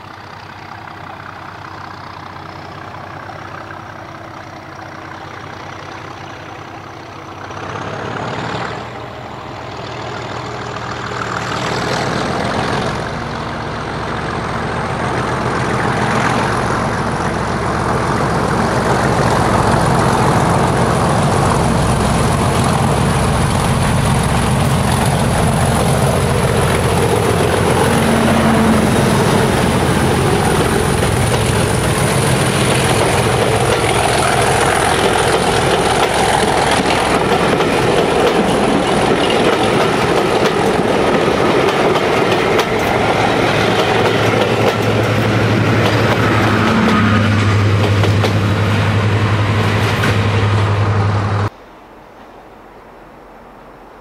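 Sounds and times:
train wheels rumbling on rails: 0.0s - 51.6s
diesel locomotive engine: 0.0s - 54.0s.

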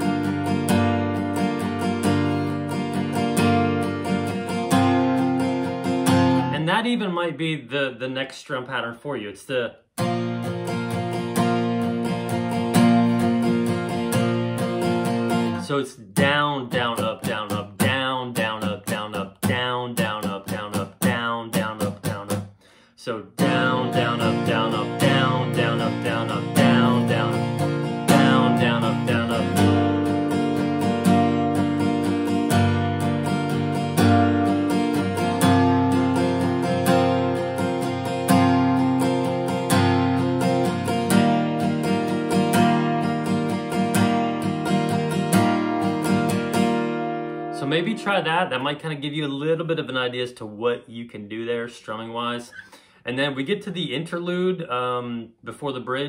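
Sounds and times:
acoustic guitar strumming: 0.0s - 7.6s, 9.5s - 49.9s, 52.1s - 53.0s.

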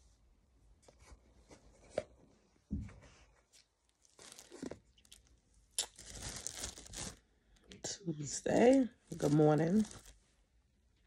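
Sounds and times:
plastic bag crinkling: 3.6s - 7.7s, 8.3s - 10.2s.

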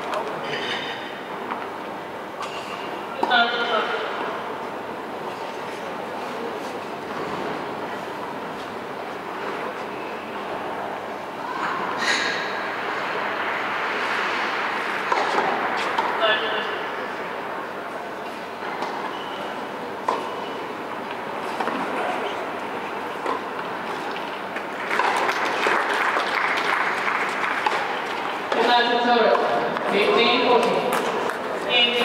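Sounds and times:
murmur of voices: 0.0s - 26.0s, 26.8s - 32.0s
racket hitting ball: 14.9s - 16.2s, 27.5s - 27.9s
tennis ball bouncing: 15.0s - 16.2s, 20.0s - 20.3s, 23.2s - 23.6s, 27.6s - 27.9s.

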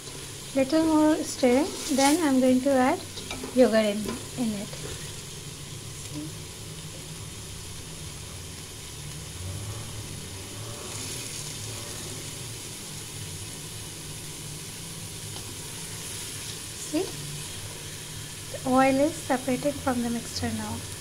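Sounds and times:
masala sizzling in oil: 0.0s - 21.0s
spatula scraping a pan: 0.8s - 5.2s.

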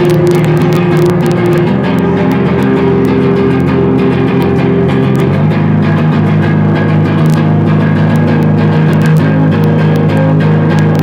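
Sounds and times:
loud metal band playing: 0.0s - 11.0s.

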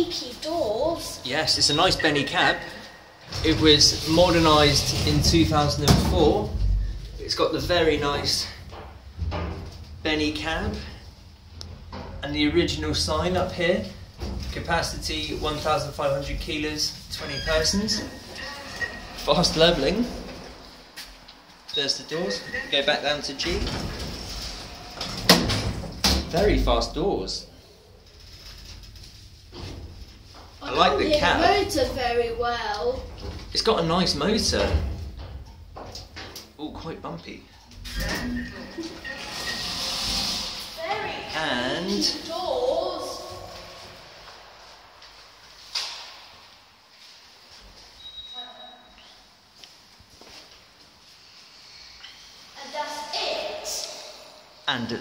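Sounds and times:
sliding doors rumbling: 3.3s - 13.4s, 23.4s - 26.4s
lift doors sliding open: 37.8s - 40.8s
brief high beep: 48.0s - 48.9s.

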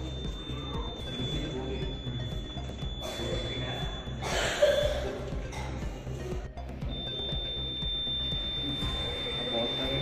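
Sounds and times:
high steady electronic beep: 0.0s - 10.0s.

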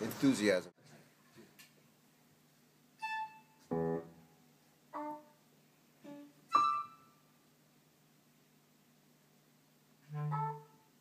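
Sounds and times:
jazz orchestra short notes: 10.0s - 10.9s.

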